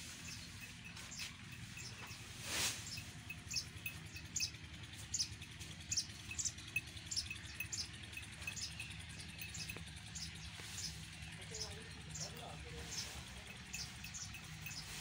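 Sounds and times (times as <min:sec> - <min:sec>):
diesel engine hum: 0:00.0 - 0:15.0.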